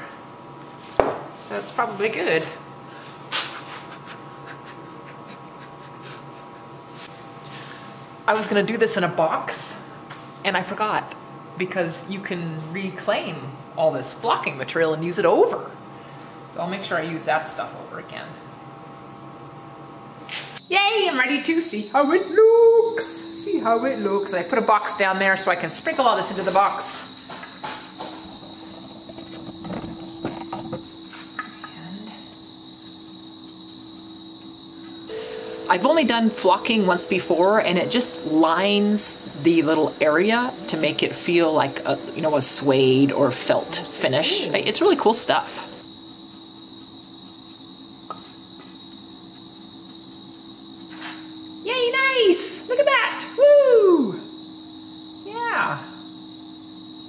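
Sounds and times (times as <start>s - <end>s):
steady hum: 0.0s - 57.0s
high-pitched machine whine: 20.6s - 57.0s
brush rustling and tapping: 32.3s - 34.5s, 44.6s - 51.3s.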